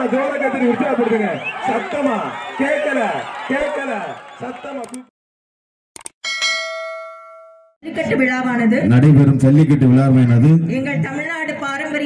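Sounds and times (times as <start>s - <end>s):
notification bell ding: 6.2s - 7.8s.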